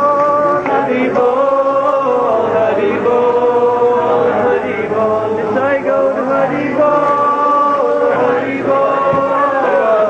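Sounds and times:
voices chanting devotional song: 0:00.0 - 0:10.0.

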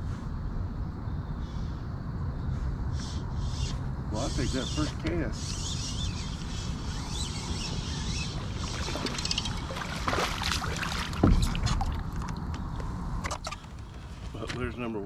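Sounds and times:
wind rumble on microphone: 0:00.0 - 0:13.3
fish splashing at water surface: 0:08.4 - 0:12.3
loud thump: 0:11.2 - 0:11.7.

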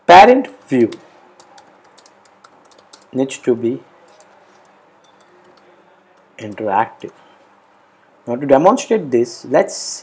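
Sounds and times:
computer keyboard typing: 0:00.6 - 0:07.8.

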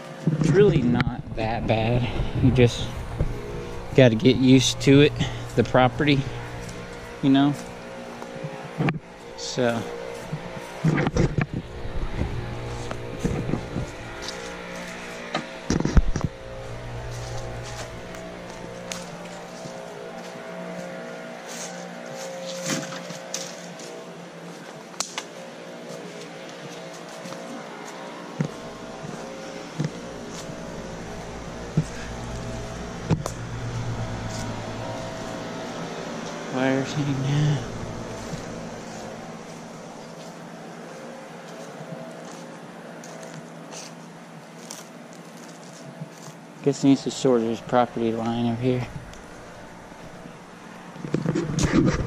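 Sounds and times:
steady engine hum: 0:00.0 - 0:52.0
footsteps and handling clicks: 0:17.0 - 0:30.5, 0:38.1 - 0:46.4.

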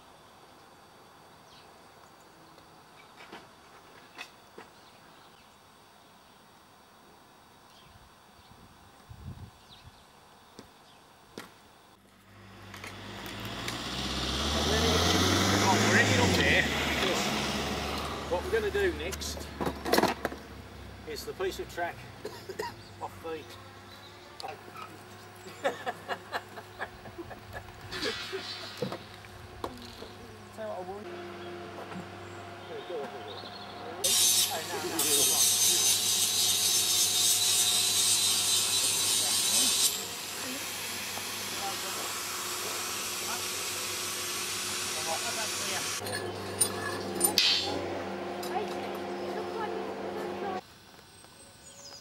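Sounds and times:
loud hiss: 0:27.8 - 0:29.6, 0:34.0 - 0:46.0.

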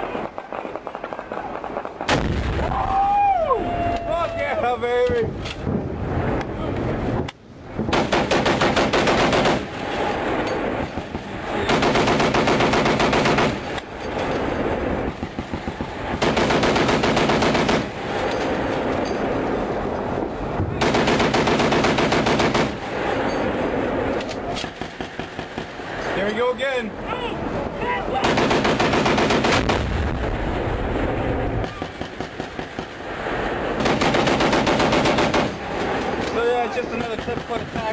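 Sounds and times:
lighter gunfire: 0:07.8 - 0:10.3, 0:10.9 - 0:13.9, 0:15.1 - 0:18.5, 0:20.8 - 0:23.2, 0:24.3 - 0:26.0, 0:28.2 - 0:30.3, 0:31.6 - 0:37.9
machine gun firing bursts: 0:07.9 - 0:09.7, 0:11.6 - 0:13.7, 0:15.2 - 0:18.0, 0:20.8 - 0:22.8, 0:28.2 - 0:29.9, 0:33.8 - 0:35.7.

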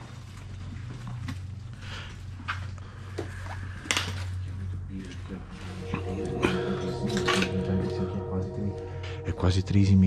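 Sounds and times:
steady low hum: 0:05.3 - 0:10.0.

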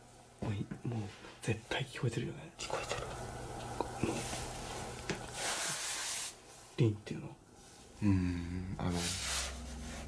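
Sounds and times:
steady low hum: 0:00.0 - 0:10.0
breathy hiss: 0:02.7 - 0:06.8.

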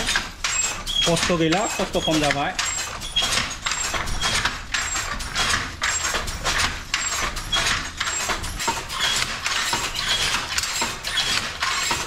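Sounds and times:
handloom rhythmic mechanical rattle: 0:00.0 - 0:12.0.

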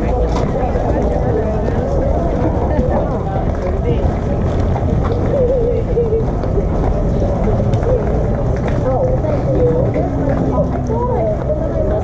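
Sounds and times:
people chatting indistinctly: 0:00.0 - 0:12.0
steady low rumble: 0:00.0 - 0:12.0.

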